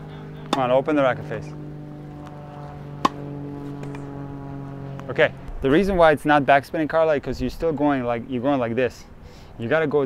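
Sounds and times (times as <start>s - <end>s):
tennis racquet hitting ball: 0.0s - 0.8s, 2.1s - 4.2s
steady low hum: 0.0s - 10.0s.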